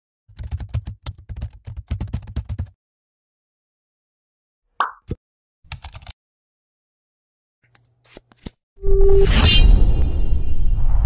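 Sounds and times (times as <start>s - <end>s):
keyboard keystrokes clicking: 5.7s - 6.2s.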